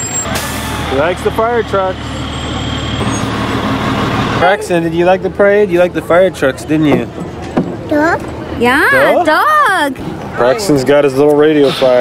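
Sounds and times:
fire engine diesel engine rumble: 0.0 - 12.0.

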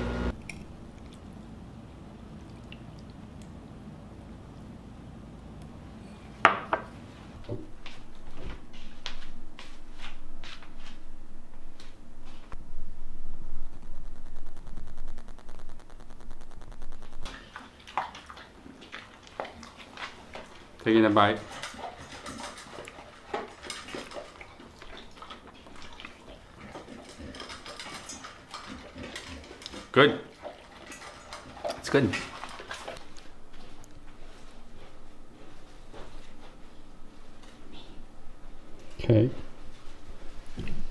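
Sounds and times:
person chewing: 15.1 - 20.7.

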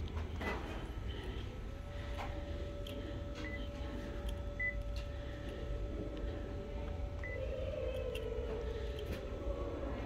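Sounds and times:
machine hum: 0.0 - 10.0
touchscreen key-press beeps: 4.3 - 4.8.

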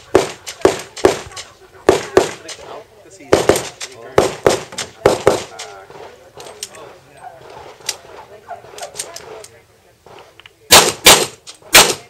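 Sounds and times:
pistol shots with echo: 0.1 - 2.6, 3.3 - 6.0, 10.7 - 12.0.

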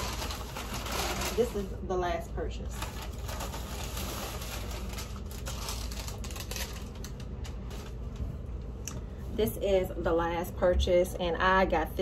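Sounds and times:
paper and plastic bag crinkling: 0.0 - 1.9, 2.6 - 8.4.

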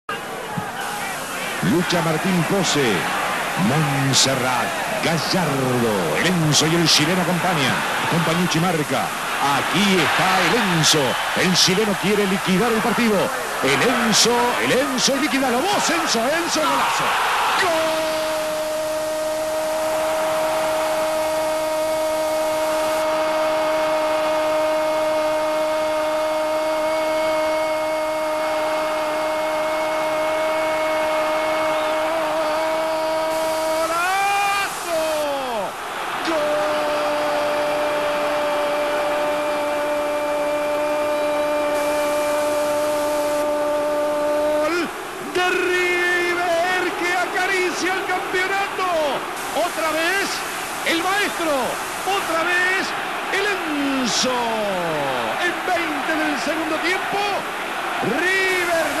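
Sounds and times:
stadium crowd noise: 0.0 - 59.0
fast excited shouting: 0.1 - 40.7, 43.5 - 59.0.

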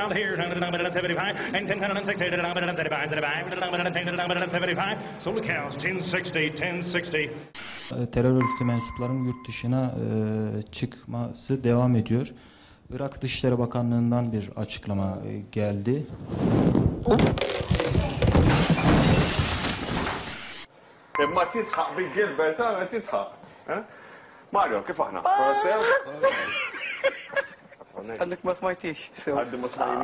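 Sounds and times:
static-like hiss burst: 7.6 - 8.0, 20.3 - 20.7
knocks and thuds: 17.0 - 20.3.

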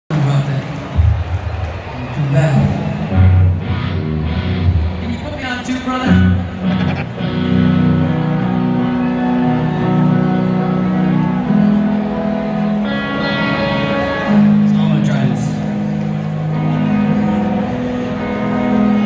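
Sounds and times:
electric guitar chords ringing: 2.6 - 19.0.

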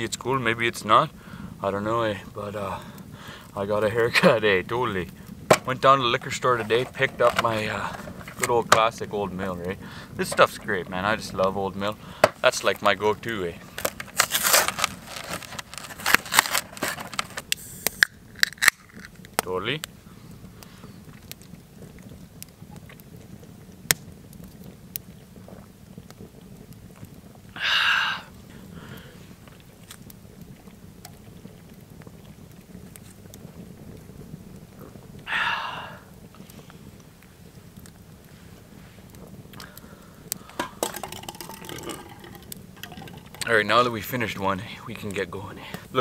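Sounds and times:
wood fire crackling: 0.0 - 46.0
loud breathy exhales: 27.6 - 29.2, 35.3 - 36.1
man chugging beer: 40.6 - 43.4.

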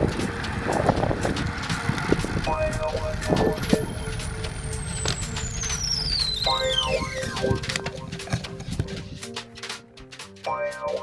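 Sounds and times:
wind noise: 0.0 - 9.3
cluster of steady tones: 0.0 - 9.4
road noise: 0.0 - 9.9
whistle-like tone gliding down: 2.4 - 8.2.

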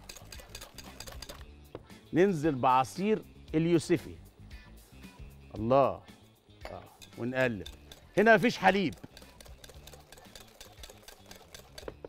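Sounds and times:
whisk clicking against glass bowl: 0.0 - 1.4, 7.0 - 12.0.

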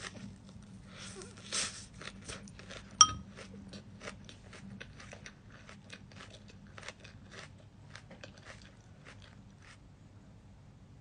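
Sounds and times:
chewing crisp salad leaves: 0.0 - 10.1.

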